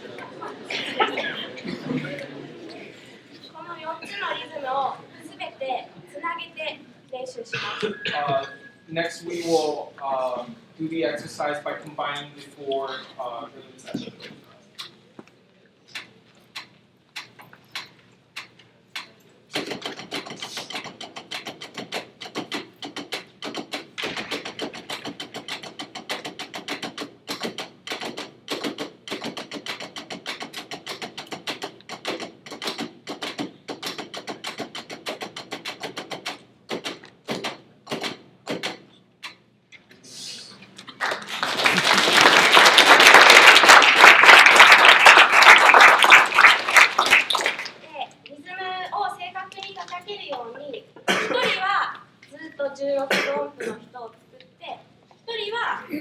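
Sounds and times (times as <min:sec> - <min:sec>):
drumsticks on practice pads: 0:15.9 - 0:39.4
applause: 0:40.9 - 0:47.8.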